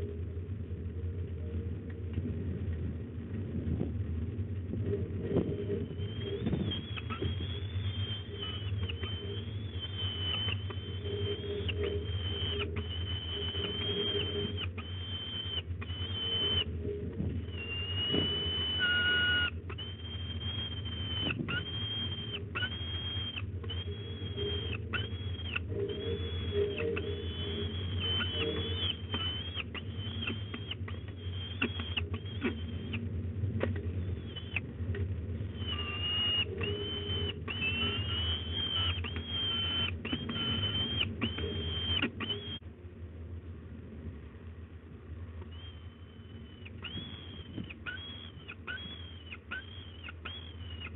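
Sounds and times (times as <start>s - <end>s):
steady low hum: 0.0s - 50.9s
falcon chick wailing calls: 5.8s - 16.7s, 17.4s - 33.1s, 34.0s - 34.7s, 35.5s - 42.6s, 45.5s - 50.9s.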